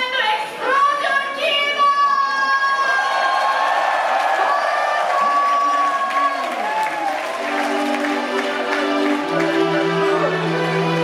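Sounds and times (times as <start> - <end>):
crowd cheering and clapping: 2.6 - 11.0.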